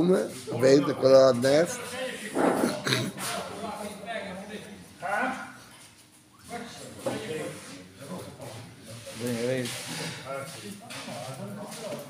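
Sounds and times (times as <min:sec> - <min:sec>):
people talking indistinctly: 0:00.0 - 0:05.8.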